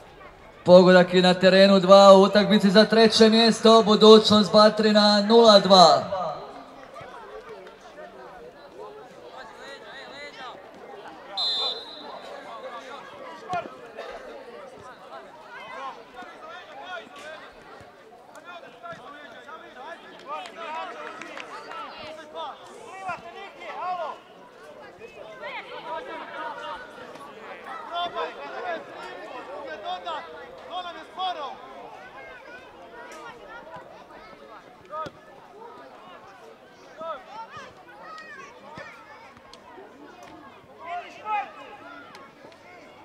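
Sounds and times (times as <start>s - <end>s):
people shouting outdoors: 0.7s - 6.8s, 11.4s - 13.4s.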